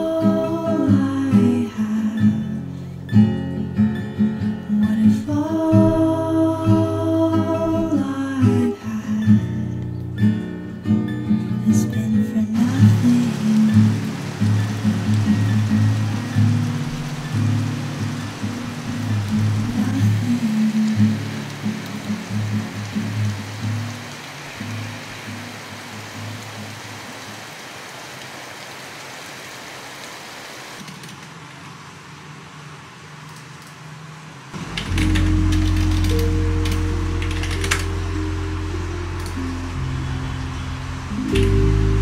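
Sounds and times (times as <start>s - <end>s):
heavy rain on pavement: 0.0s - 3.1s, 4.7s - 9.2s, 12.5s - 42.0s
soft background music: 0.0s - 22.8s, 34.8s - 42.0s.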